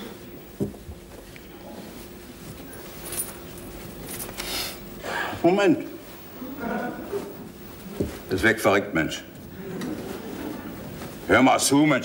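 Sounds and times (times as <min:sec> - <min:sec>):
steady low hum: 0:00.0 - 0:12.0
jacket rustling: 0:00.4 - 0:05.0, 0:05.9 - 0:12.0.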